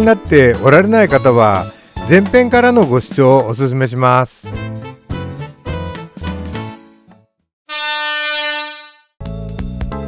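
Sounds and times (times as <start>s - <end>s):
background music: 0.0s - 7.4s, 8.8s - 10.0s.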